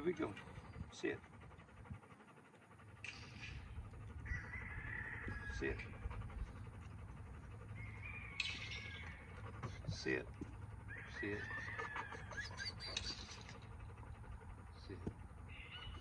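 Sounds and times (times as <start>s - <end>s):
low wind rumble: 0.0s - 11.4s.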